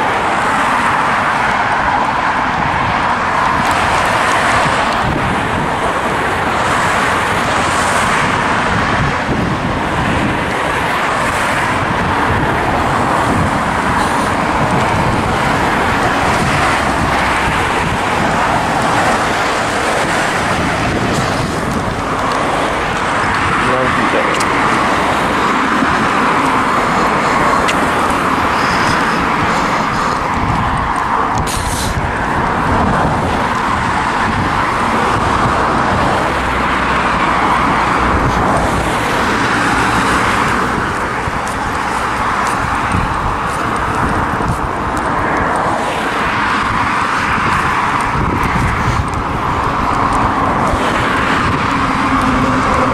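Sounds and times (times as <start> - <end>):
cars passing on road: 0.0 - 52.9.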